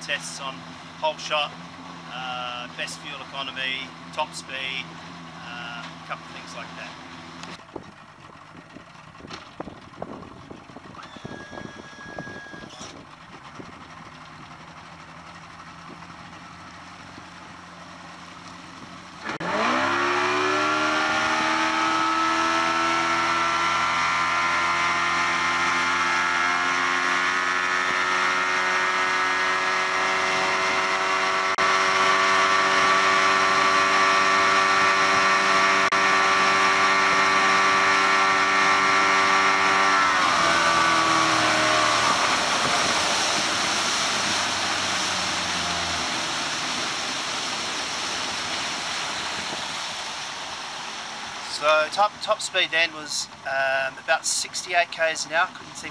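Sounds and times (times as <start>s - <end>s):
outboard motor revving: 0.0s - 55.9s
wind: 0.0s - 55.9s
rushing water: 40.6s - 52.5s.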